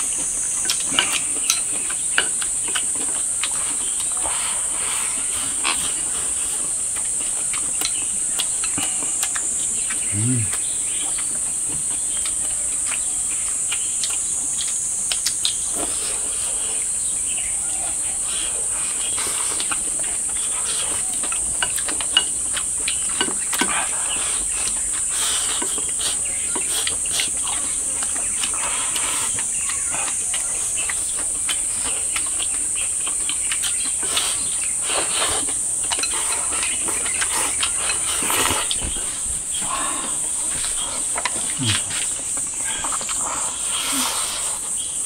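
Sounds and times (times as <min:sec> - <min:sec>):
insects buzzing: 0:00.0 - 0:45.0
people chewing: 0:00.0 - 0:45.0
chopsticks clicking on bowls: 0:19.0 - 0:38.8.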